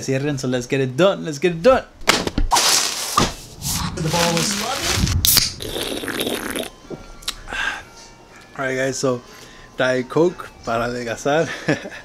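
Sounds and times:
plastic packaging rustling: 2.5 - 5.2.

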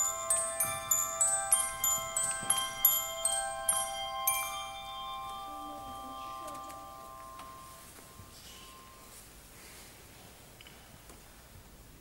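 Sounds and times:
handbell choir ringing: 0.0 - 9.1.

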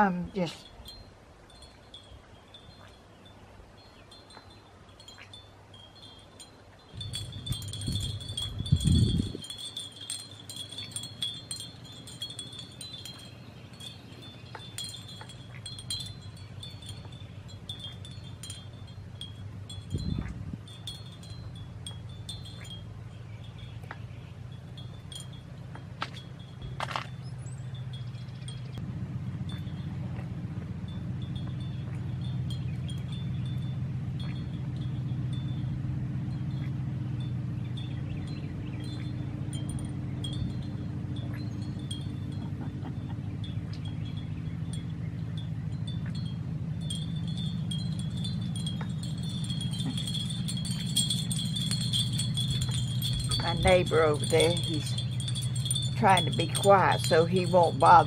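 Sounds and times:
wind chimes ringing: 0.0 - 28.8, 29.4 - 30.1, 30.7 - 58.0
low steady hum: 0.0 - 58.0.

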